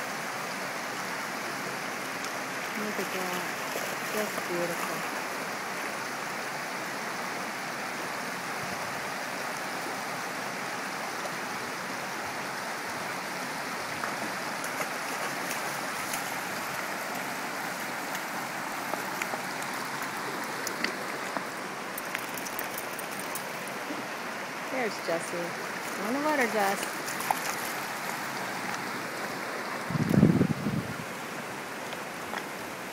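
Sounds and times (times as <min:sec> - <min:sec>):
water flowing over rocks: 0:00.0 - 0:32.9
dog wading among stones: 0:02.5 - 0:05.5, 0:13.8 - 0:29.9.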